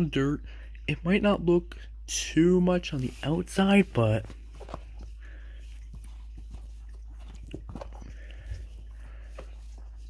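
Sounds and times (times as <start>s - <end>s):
steady low hum: 0.0s - 10.0s
rubber clogs handled on rug: 2.8s - 10.0s.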